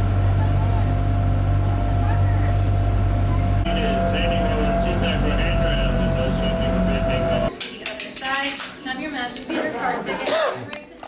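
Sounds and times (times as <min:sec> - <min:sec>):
boat engine humming: 0:00.0 - 0:07.5
crowd chatter: 0:00.0 - 0:11.0.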